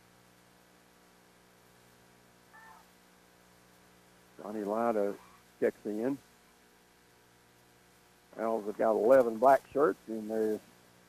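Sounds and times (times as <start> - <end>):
steady low hum: 0.0 - 11.0
faint pitched call: 2.5 - 2.9, 5.1 - 5.5.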